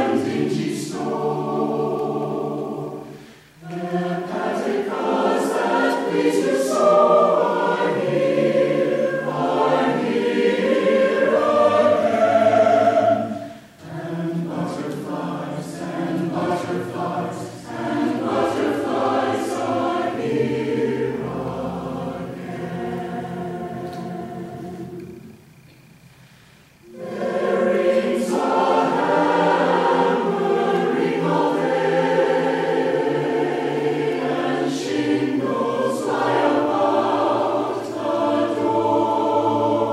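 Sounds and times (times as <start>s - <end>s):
mixed choir singing: 0.0s - 25.5s, 26.8s - 39.9s.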